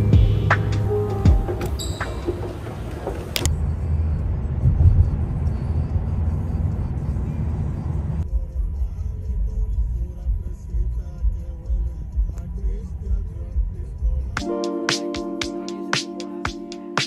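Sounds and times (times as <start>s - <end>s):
background music: 0.0s - 3.5s, 8.3s - 17.0s
car road rumble inside cabin: 3.2s - 14.4s.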